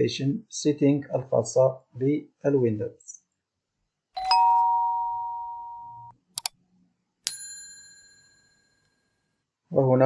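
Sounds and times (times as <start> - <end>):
bright bell ding: 4.2 - 6.1, 7.3 - 8.9
quick clicks: 6.4 - 6.6.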